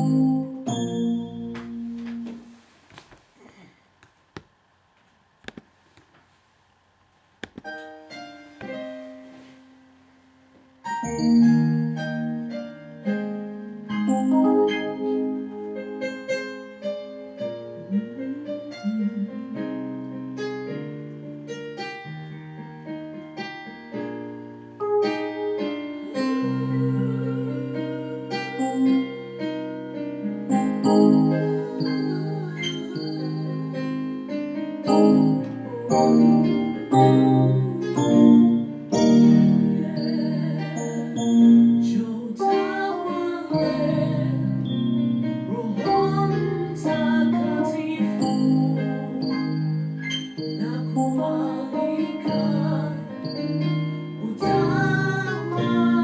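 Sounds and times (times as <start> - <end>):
electronic keyboard piano playing: 0.0 - 2.6, 10.8 - 56.0.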